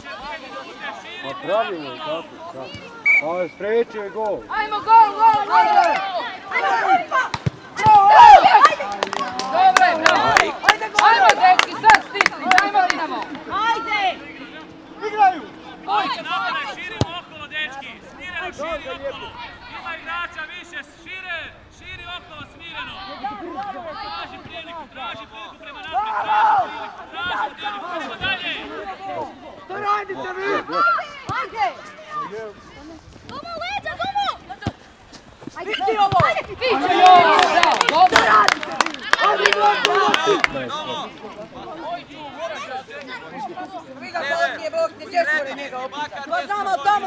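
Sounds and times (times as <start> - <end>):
crowd shouting excitedly: 0.0 - 32.4, 35.6 - 41.0
loud shout: 4.5 - 12.9, 25.9 - 28.9, 35.8 - 40.7.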